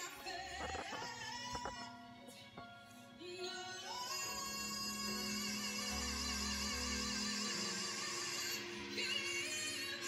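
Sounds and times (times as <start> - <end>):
musical accompaniment: 0.0 - 10.0
person singing with vibrato: 3.2 - 10.0.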